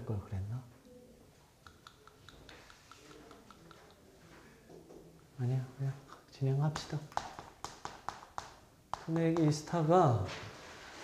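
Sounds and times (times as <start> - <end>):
chalk tapping on chalkboard: 1.6 - 4.1, 6.1 - 9.9.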